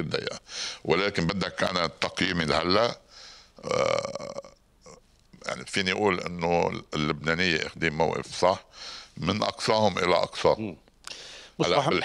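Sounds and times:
soft breath: 0.5 - 0.8, 3.1 - 3.6, 8.7 - 9.2, 11.0 - 11.6
man's throaty vocal sound: 3.6 - 5.1.

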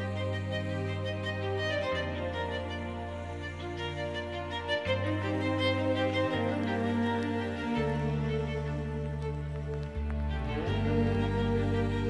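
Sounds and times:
slow background music: 0.0 - 12.0.

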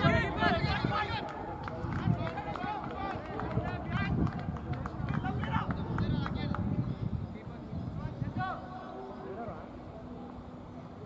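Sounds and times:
players calling and shouting: 0.0 - 6.7.

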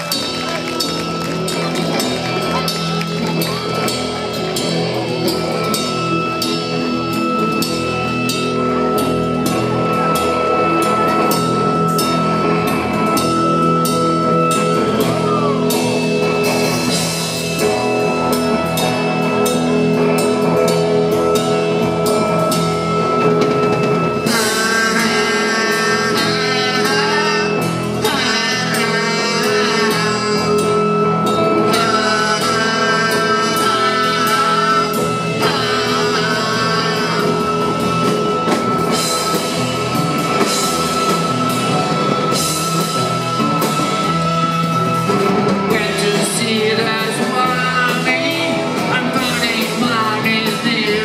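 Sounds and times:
loud live rock band: 0.0 - 51.0
person singing: 24.1 - 39.5, 45.6 - 51.0.

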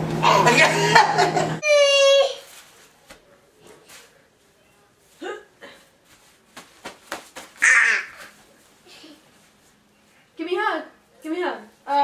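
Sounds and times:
toddler squealing and giggling: 7.6 - 8.4.

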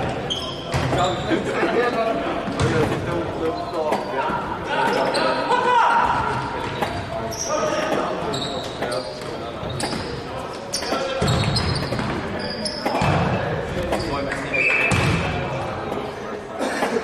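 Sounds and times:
sneaker squeaks: 0.0 - 1.4, 2.5 - 5.5, 6.1 - 16.1
players shouting: 4.1 - 6.6.

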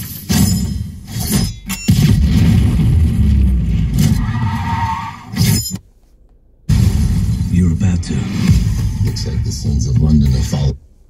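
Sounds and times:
film soundtrack music: 6.7 - 10.8.

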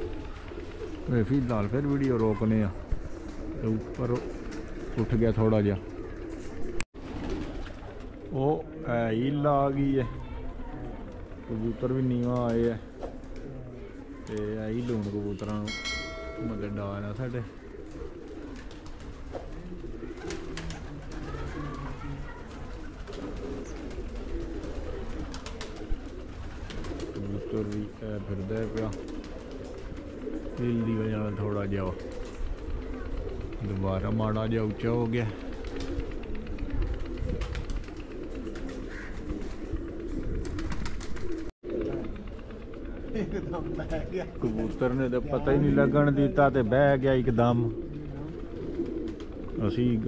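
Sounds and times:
pigeons cooing: 0.0 - 50.0.

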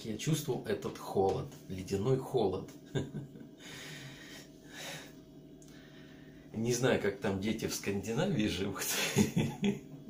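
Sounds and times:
man exhaling breathily: 3.6 - 6.4.

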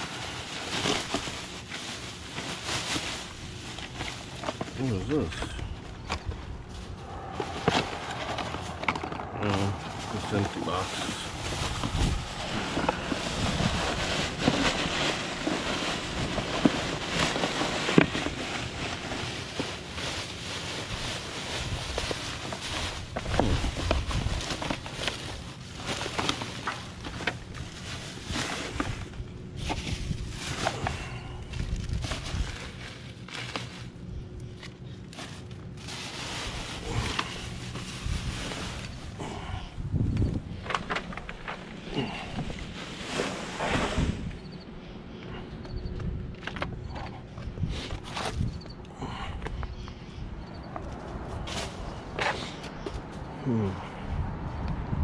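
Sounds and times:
plastic garbage bags rustling: 0.0 - 44.8, 50.8 - 53.7.

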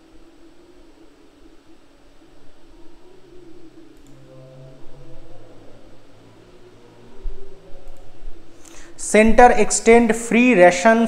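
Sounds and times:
faint low hum: 0.0 - 11.0
steady low hiss: 0.0 - 11.0.

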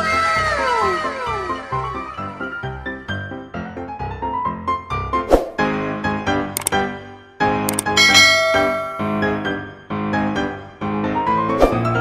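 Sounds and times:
piano music: 7.7 - 12.0.

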